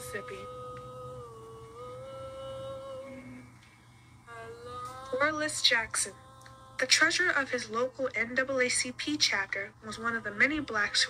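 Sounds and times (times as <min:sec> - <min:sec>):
person humming through phone speaker: 0:00.0 - 0:03.6, 0:04.3 - 0:05.4.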